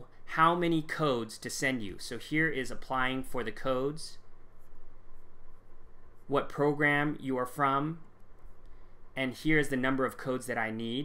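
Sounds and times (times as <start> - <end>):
low room hum: 0.0 - 11.0.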